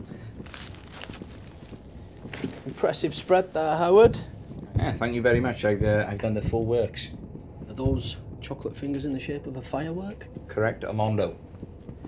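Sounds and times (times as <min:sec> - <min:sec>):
soft footsteps: 0:00.0 - 0:06.0.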